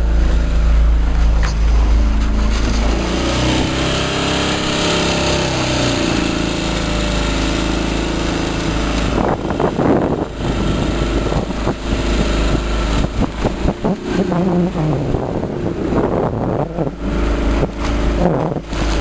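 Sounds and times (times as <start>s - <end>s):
small outboard motor running: 0.0s - 19.0s
wind buffeting microphone: 0.0s - 19.0s.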